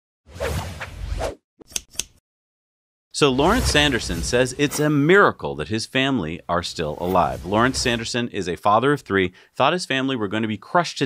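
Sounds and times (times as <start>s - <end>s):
whoosh: 3.3s - 5.0s, 7.0s - 8.2s.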